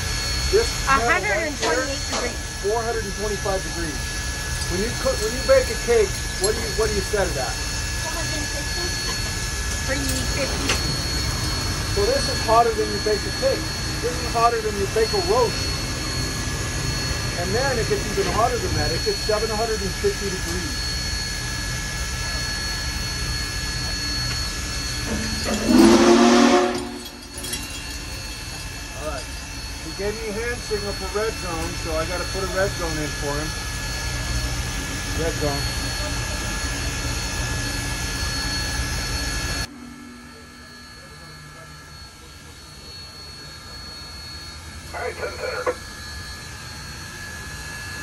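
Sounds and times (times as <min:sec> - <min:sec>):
steam locomotive roar and hiss: 0:00.0 - 0:39.7, 0:41.1 - 0:48.0
faint high whines: 0:00.0 - 0:48.0.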